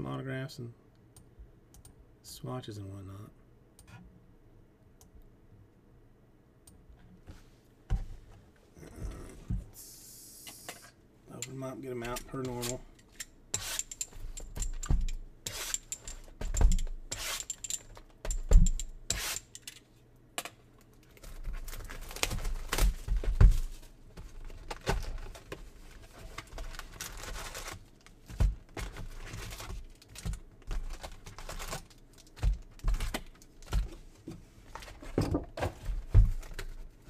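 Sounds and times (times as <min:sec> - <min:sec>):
cardboard and wrappers rustling and tearing: 0:21.0 - 0:34.0.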